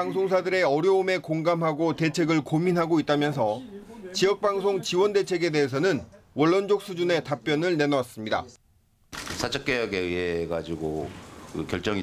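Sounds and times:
man speaking: 0:00.0 - 0:08.6.

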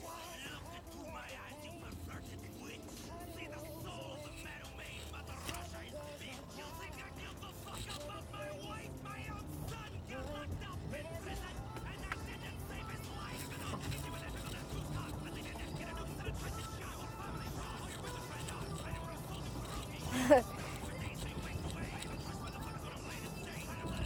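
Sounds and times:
man rapping over hip-hop beat: 0:00.0 - 0:24.0.

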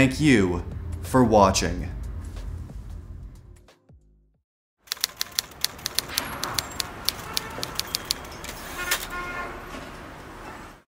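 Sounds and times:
keyboard keys typing: 0:04.9 - 0:08.5.

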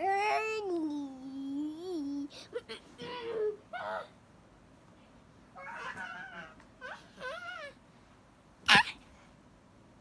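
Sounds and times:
high-pitched whimpering calls: 0:05.6 - 0:07.8.

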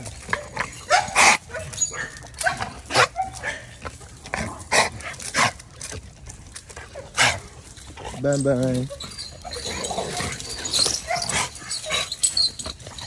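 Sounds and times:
dog barking: 0:00.3 - 0:03.8, 0:10.1 - 0:12.0.

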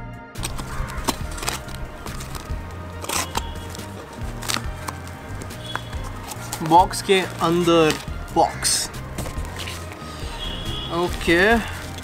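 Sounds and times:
background music with bass: 0:00.0 - 0:12.0.

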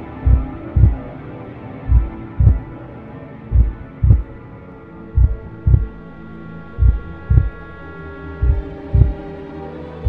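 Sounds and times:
low hum: 0:00.0 - 0:01.1, 0:01.9 - 0:02.8, 0:03.5 - 0:07.8, 0:08.4 - 0:09.3
heartbeat thumps: 0:00.2 - 0:01.0, 0:01.9 - 0:02.7, 0:03.5 - 0:04.4, 0:05.2 - 0:06.0, 0:06.8 - 0:07.6, 0:08.4 - 0:09.3.

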